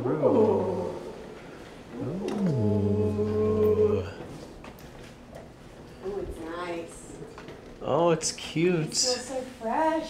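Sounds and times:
person's wordless ooh: 2.0 - 4.2.

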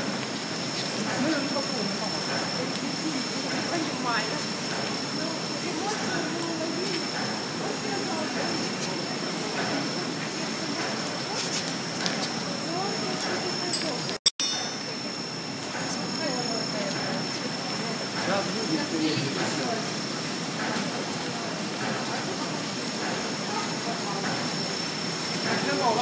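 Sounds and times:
indistinct voices talking: 0.0 - 26.0
extrusion machine running: 14.8 - 26.0.

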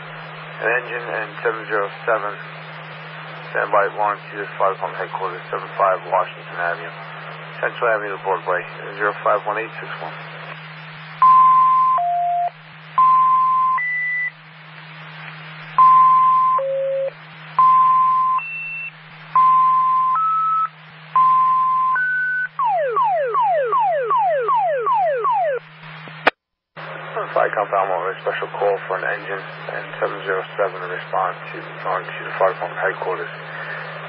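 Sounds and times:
low radio hum: 0.0 - 34.0
dispatcher speaking over radio: 0.4 - 10.6, 26.8 - 34.0.

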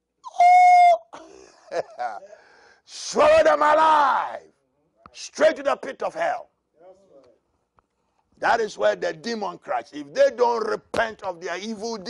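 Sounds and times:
man laughing: 1.0 - 2.6.

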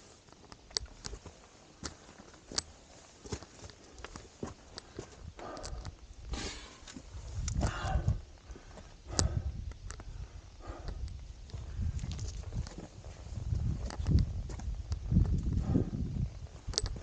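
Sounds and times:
wind buffeting microphone: 5.1 - 17.0.

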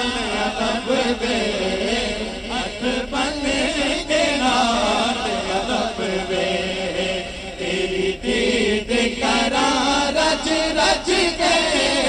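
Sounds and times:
men singing with chorus: 0.0 - 12.0.

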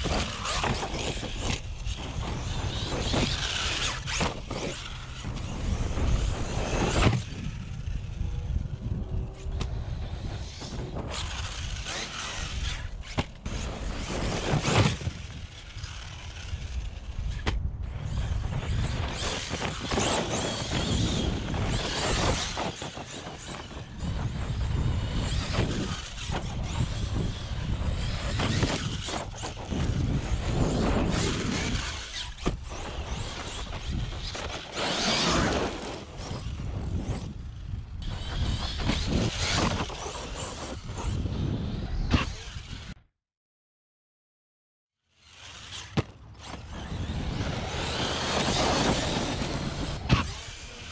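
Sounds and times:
toy truck motor accelerating: 0.0 - 17.4, 18.0 - 43.0, 45.2 - 50.9
wind on microphone: 0.0 - 43.0.

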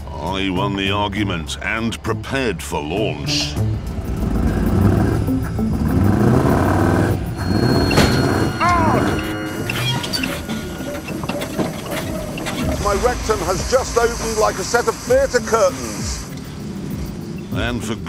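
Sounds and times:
background music: 0.0 - 18.0
buggy engine running: 3.5 - 18.0
arching squeal: 7.1 - 17.5.

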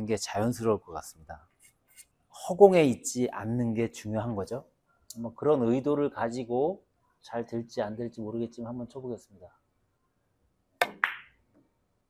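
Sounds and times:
cue tip striking ball: 10.8 - 11.3
billiard balls clicking: 10.8 - 11.4.

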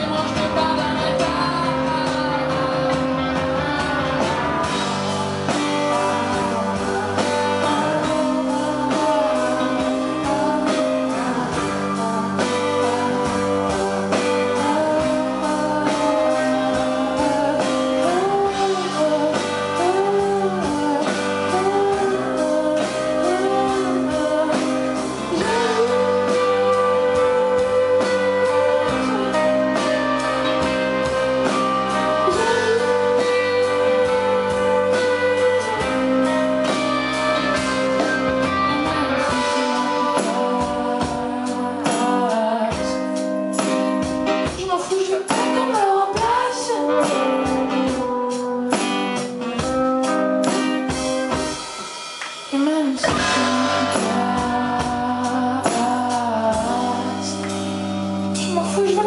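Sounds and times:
woman singing lead vocal: 0.0 - 51.6, 52.4 - 59.0
band playing: 0.0 - 59.0.

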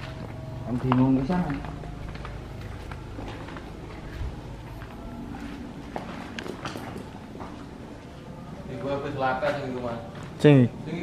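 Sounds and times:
footsteps on gravel: 0.0 - 7.8.

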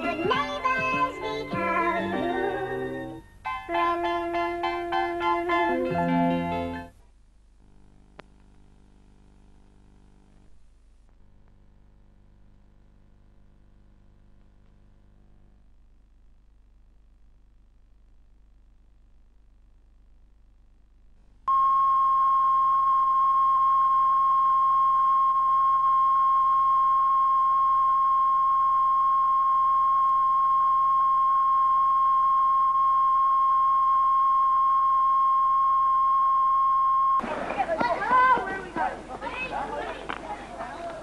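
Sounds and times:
steady test tone: 21.5 - 37.2
voices: 37.2 - 41.0.

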